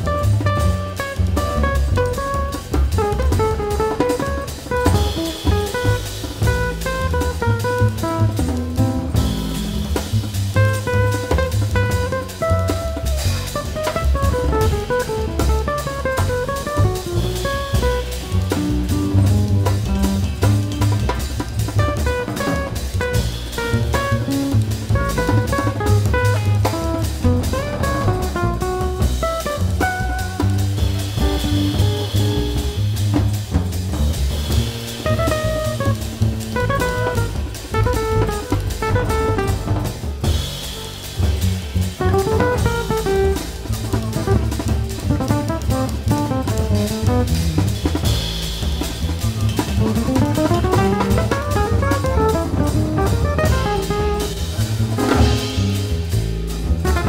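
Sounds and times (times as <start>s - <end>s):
drum kit busy beat: 0.0s - 57.0s
walking double bass line: 0.0s - 57.0s
cymbal washes: 14.6s - 45.0s, 46.6s - 56.8s.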